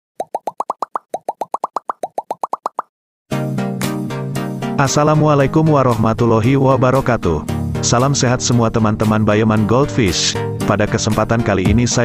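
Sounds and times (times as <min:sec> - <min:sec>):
cartoon bubble pops: 0:00.2 - 0:02.9
background music: 0:03.3 - 0:12.0.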